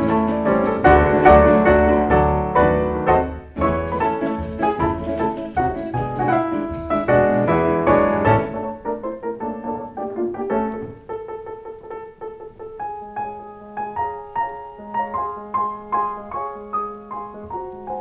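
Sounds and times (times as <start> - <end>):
piano playing latin tune: 0.0 - 18.0.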